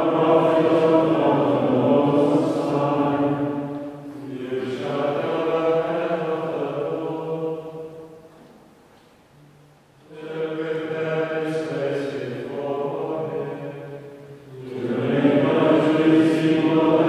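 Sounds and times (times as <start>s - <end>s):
men's choir singing plainchant: 0.0s - 8.3s, 10.0s - 17.0s.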